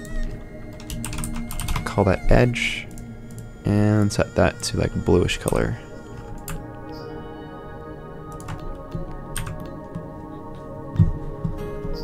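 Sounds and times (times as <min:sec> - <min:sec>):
keyboard keys clicking: 0:00.0 - 0:07.0, 0:08.3 - 0:12.0.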